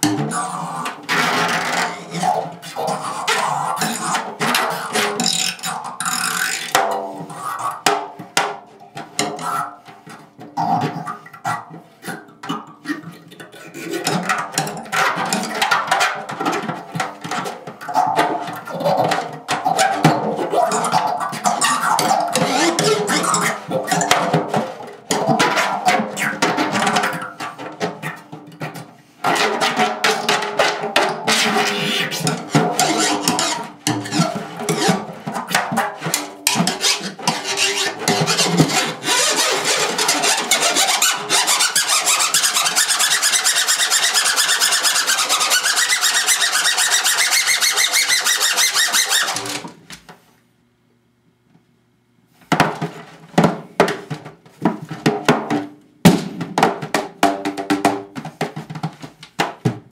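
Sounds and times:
squeals from drumhead: 0:00.0 - 0:08.0, 0:09.3 - 0:49.7
rod scraping a drumhead: 0:00.0 - 0:49.8.

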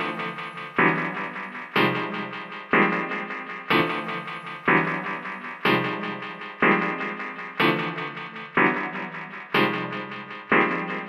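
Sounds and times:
house music keyboard chords: 0:00.0 - 0:11.0.

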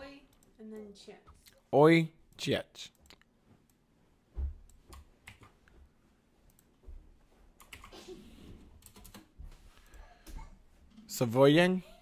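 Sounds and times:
keyboard and mouse clicks: 0:04.6 - 0:05.7, 0:06.5 - 0:06.8, 0:07.6 - 0:08.0, 0:08.6 - 0:09.4.

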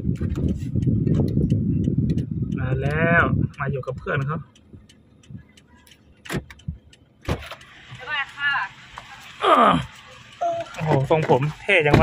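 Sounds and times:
car door clicks: 0:05.8 - 0:08.0, 0:10.6 - 0:12.0.

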